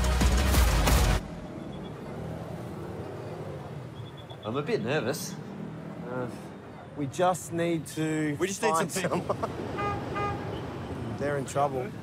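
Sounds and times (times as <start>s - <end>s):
background music: 0.0s - 1.4s
road traffic: 0.0s - 12.0s
motorbikes passing: 1.2s - 12.0s.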